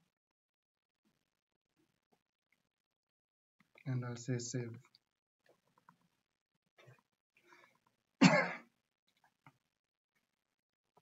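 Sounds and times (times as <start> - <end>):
man clearing his throat: 8.2 - 8.7.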